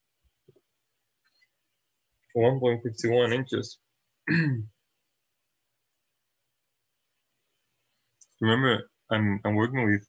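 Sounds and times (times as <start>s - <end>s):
man clearing throat: 4.3s - 4.7s.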